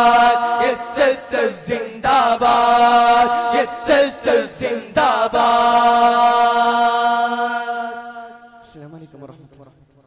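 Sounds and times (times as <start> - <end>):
group singing long held note: 0.0 - 8.8.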